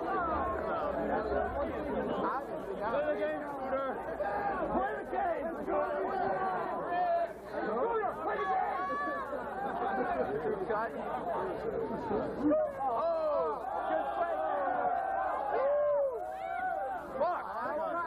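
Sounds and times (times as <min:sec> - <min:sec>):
crowd chattering: 0:00.0 - 0:18.0.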